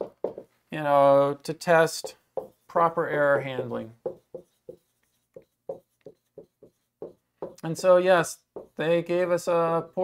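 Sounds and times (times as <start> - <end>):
marker writing on whiteboard: 0.0 - 0.6, 1.6 - 10.0.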